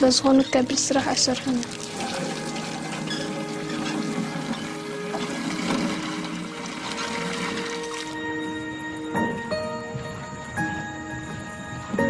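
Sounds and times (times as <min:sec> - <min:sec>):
soft background music: 0:00.0 - 0:12.0
running water rushing: 0:00.8 - 0:08.2.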